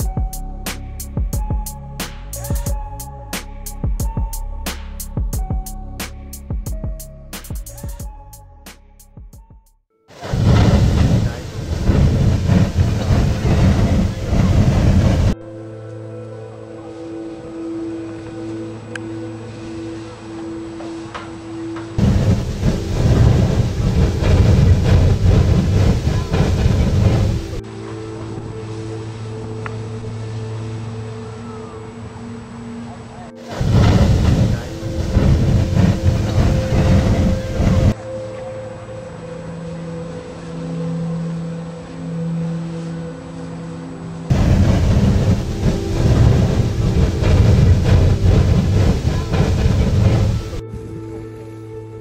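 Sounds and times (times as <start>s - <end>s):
geyser water and steam rushing: 10.2s - 15.4s, 19.7s - 30.8s, 33.4s - 38.0s, 44.3s - 50.6s
water splashing: 10.2s - 15.4s, 22.0s - 30.3s
steady hum: 22.0s - 27.6s, 33.4s - 38.0s, 44.2s - 50.7s.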